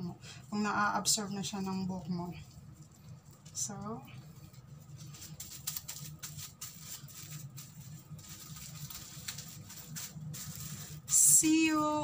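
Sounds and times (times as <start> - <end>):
low steady hum: 0.0 - 12.0
plastic cap crinkling: 5.0 - 11.1.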